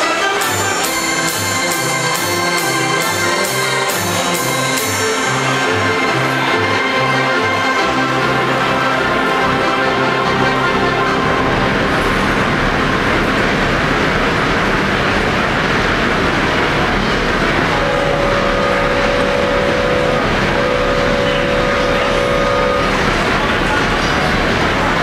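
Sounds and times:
organ whistle-like tones: 0.0 - 25.0
organ rushing hiss: 0.5 - 25.0.

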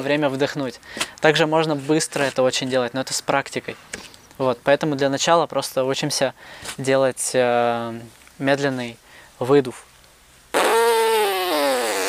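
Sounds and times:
buzzing raspberry blow through lips: 10.5 - 12.0.

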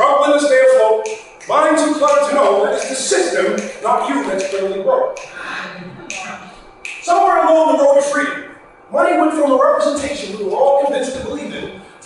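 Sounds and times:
finger snaps: 1.0 - 5.4, 6.0 - 7.1.

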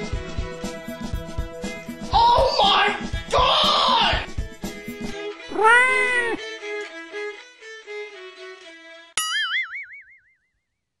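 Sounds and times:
cartoon boing sound effect: 9.2 - 10.3.

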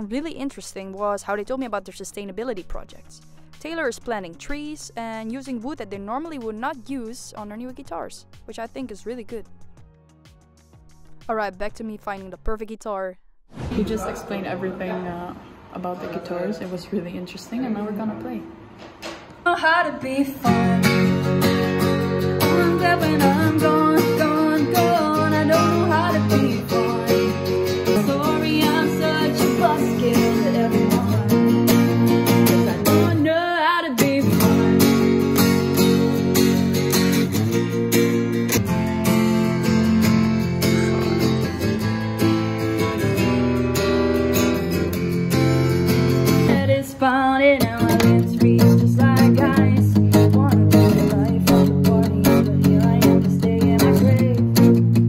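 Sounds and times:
woman singing: 19.5 - 21.4, 22.4 - 35.4, 46.4 - 54.9
acoustic guitar chords: 19.5 - 55.0.

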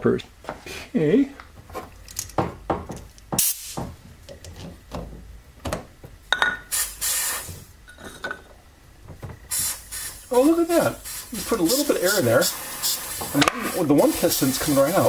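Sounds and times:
compressed air hissing: 3.4 - 3.9, 6.6 - 7.8, 9.4 - 15.0.

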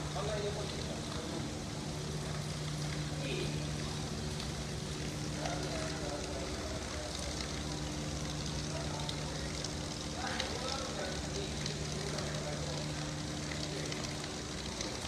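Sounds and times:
low hum and hiss: 0.0 - 15.0.

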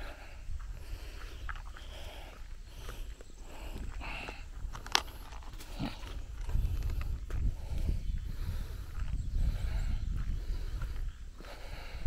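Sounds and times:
microphone wind buffeting: 0.0 - 12.0.

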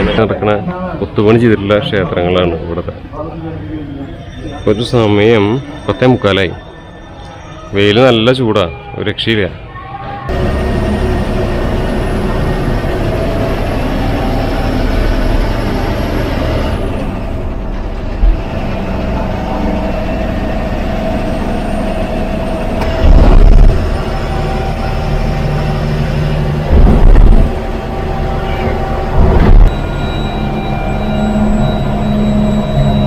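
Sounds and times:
bus diesel engine: 0.0 - 8.6, 9.5 - 33.0
road noise: 10.2 - 33.0
loud low thumps: 22.8 - 24.3, 26.6 - 30.5.

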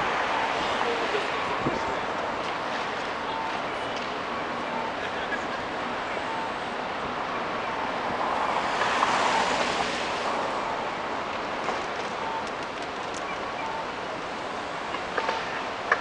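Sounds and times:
city street traffic: 0.0 - 16.0.

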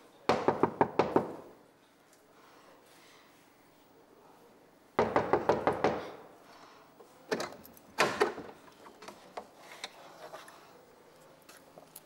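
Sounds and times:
rapid knocking on wooden door: 5.0 - 6.1.

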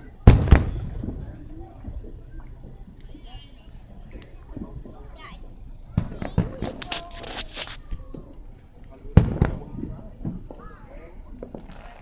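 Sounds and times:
fireworks booms: 0.0 - 2.8, 4.1 - 8.5, 9.1 - 12.0
sharp firework pops: 0.2 - 3.2, 5.9 - 12.0.

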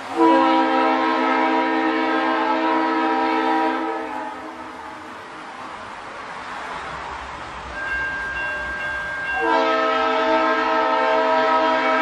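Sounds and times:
train horn blast: 0.1 - 5.1, 9.4 - 12.0.

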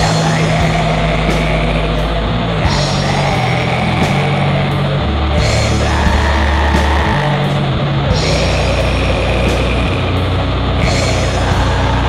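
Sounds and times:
metal music with distorted guitars: 0.0 - 12.0.

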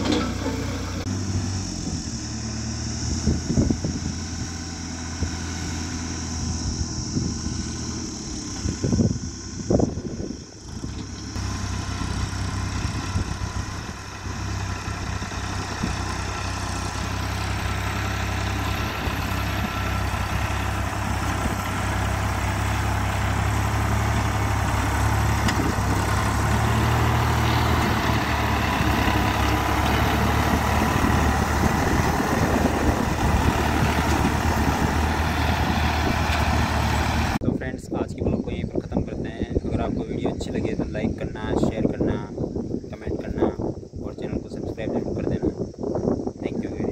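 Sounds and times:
dozer blade pushing soil: 0.0 - 6.6, 10.7 - 37.4
tractor diesel engine under load: 0.0 - 46.9.

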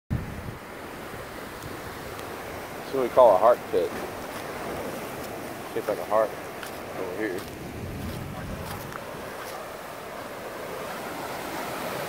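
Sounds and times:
wind rumble on microphone: 0.1 - 2.7, 3.8 - 12.0
ocean surf: 0.1 - 12.0
wind rushing: 7.4 - 9.5.

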